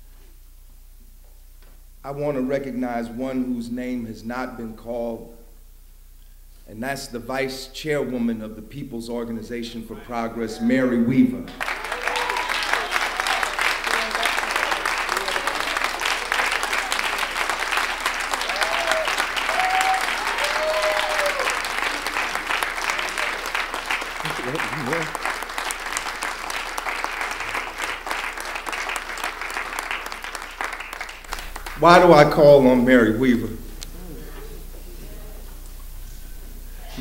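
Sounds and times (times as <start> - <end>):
audience applauding: 11.5 - 33.0.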